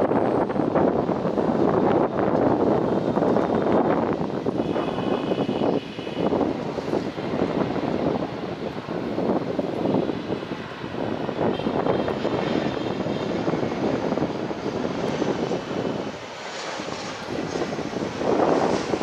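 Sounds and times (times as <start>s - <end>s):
faint engine whine: 0.0s - 19.0s
jet engines rumbling: 0.0s - 19.0s.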